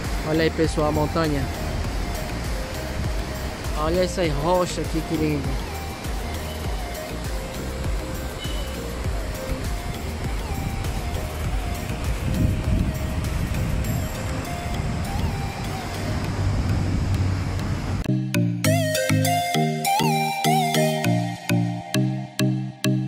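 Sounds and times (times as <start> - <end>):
steady rushing noise: 0.0 - 18.1
soft background music: 0.0 - 23.0
heavy low rumbling: 10.0 - 18.1.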